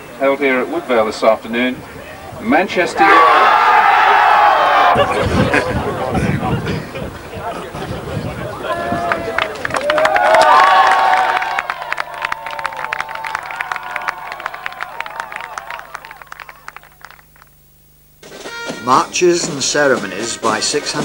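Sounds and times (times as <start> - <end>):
people cheering: 2.0 - 6.6, 7.3 - 17.5
small group clapping: 9.0 - 17.6.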